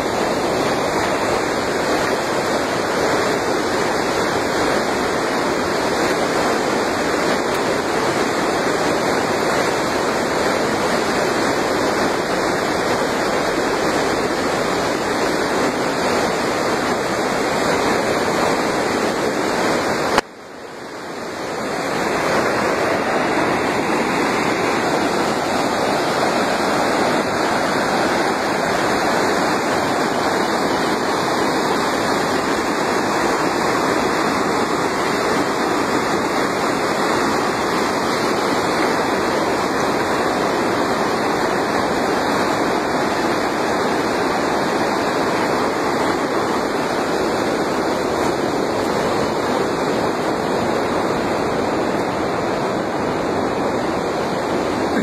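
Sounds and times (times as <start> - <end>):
floodwater rushing: 0.0 - 55.0.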